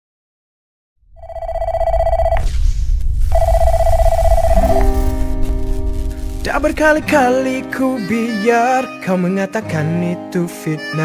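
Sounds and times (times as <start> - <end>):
telephone ringing: 1.2 - 2.4, 3.3 - 5.0
music: 4.5 - 11.0.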